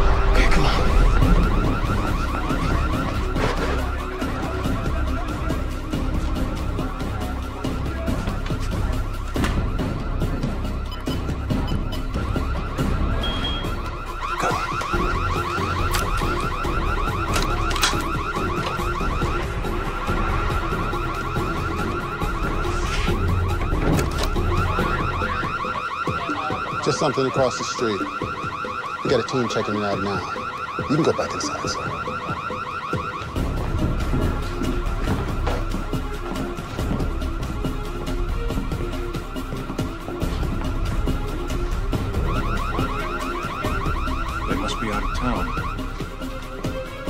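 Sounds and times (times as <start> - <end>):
car alarm warbling: 0.0 - 47.0.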